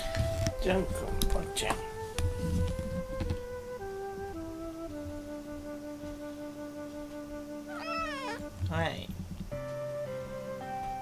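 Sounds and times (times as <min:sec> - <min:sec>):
soft flute-like background music: 0:00.0 - 0:11.0
cat meowing: 0:07.7 - 0:08.4.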